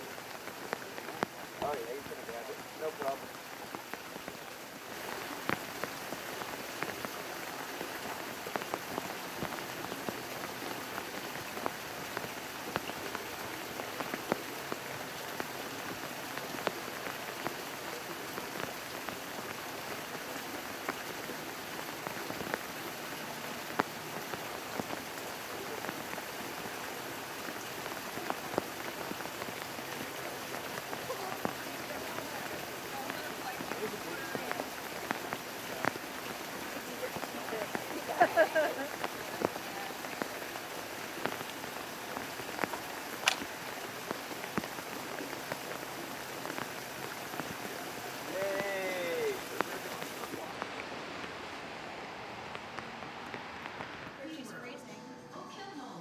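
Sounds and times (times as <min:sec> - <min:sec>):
steady rain falling: 0:00.0 - 0:54.7.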